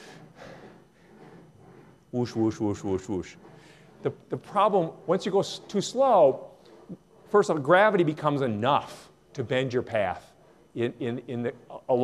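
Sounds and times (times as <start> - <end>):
ball rolling on metal track: 0.0 - 12.0.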